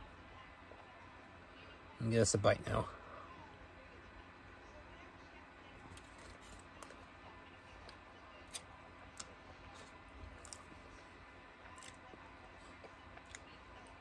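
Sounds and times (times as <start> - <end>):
man chewing food: 7.8 - 14.0.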